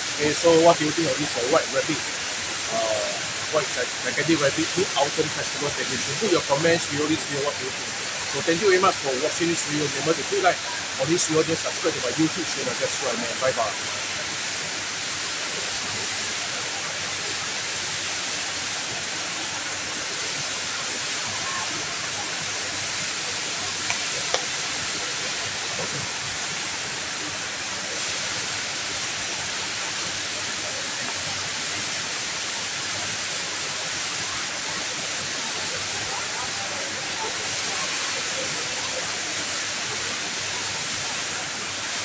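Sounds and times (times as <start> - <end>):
faint murmur of voices: 0.0 - 42.0
indoor waterfall rushing: 0.0 - 42.0.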